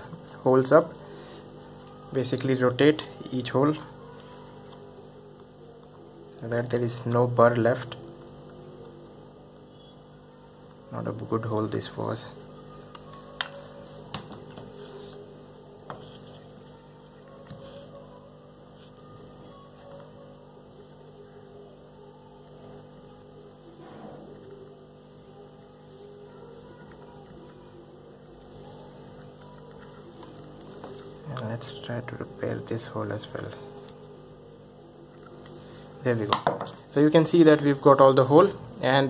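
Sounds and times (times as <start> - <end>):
low electrical hum: 0.0 - 39.0.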